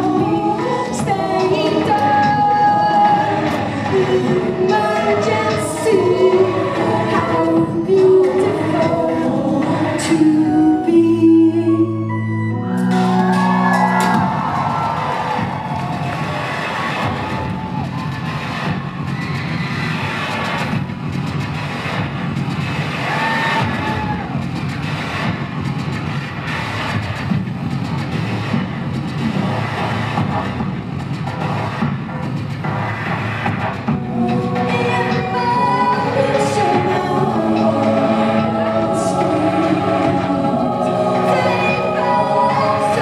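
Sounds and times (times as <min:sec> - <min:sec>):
crackling noisy beat: 0:12.9 - 0:34.7.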